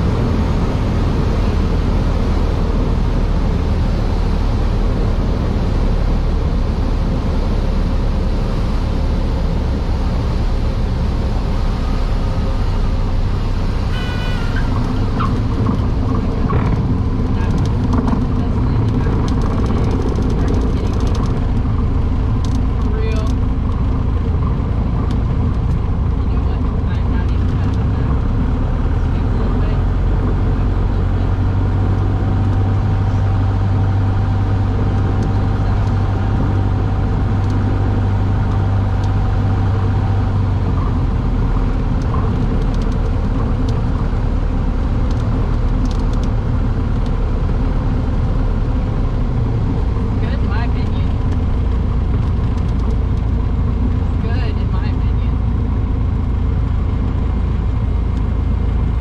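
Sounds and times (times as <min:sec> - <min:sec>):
small plane engine drone: 0:00.0 - 0:59.0.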